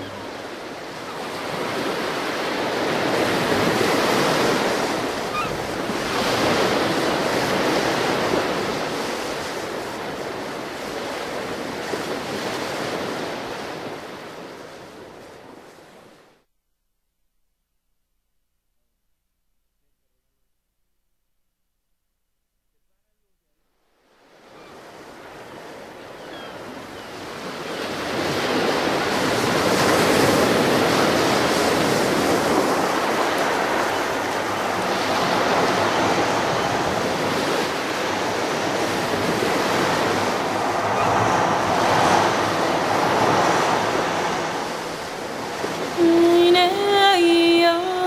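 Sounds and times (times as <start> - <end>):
ocean waves: 0.0 - 16.4, 24.0 - 48.0.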